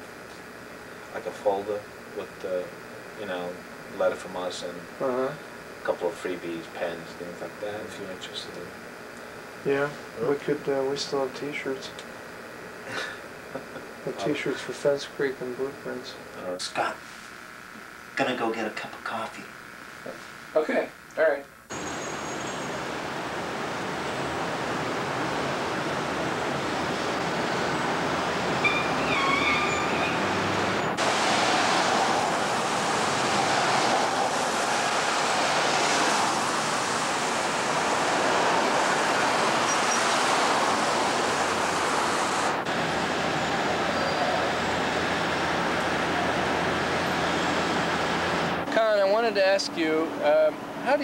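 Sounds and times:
cars and trucks passing: 0:21.7 - 0:48.8
faint high squeaks: 0:28.6 - 0:30.4.

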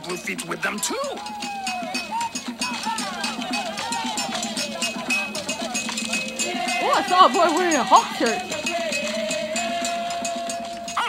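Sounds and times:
drums in fast steady beat: 0:00.0 - 0:11.0
group singing and calling: 0:00.0 - 0:11.0.

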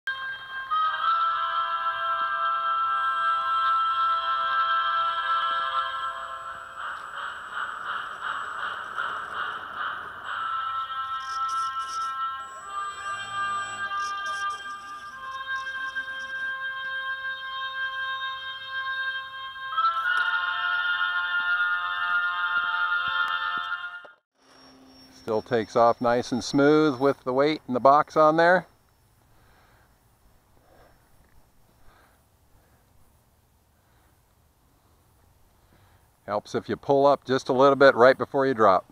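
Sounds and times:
sustained music chords: 0:05.0 - 0:19.5.

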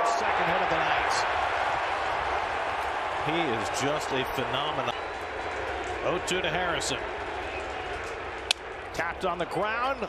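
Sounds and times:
ballpark crowd noise: 0:00.0 - 0:10.0.

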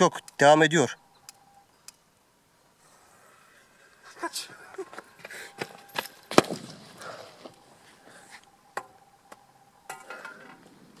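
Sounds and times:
sharp pops and crackles: 0:01.2 - 0:02.2.

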